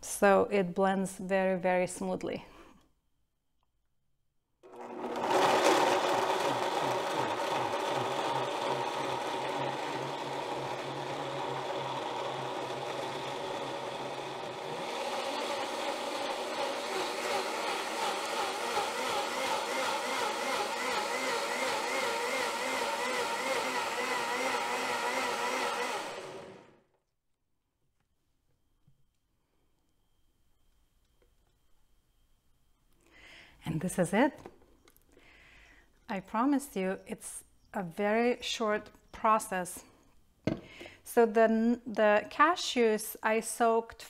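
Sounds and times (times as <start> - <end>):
blender running: 4.6 - 26.8.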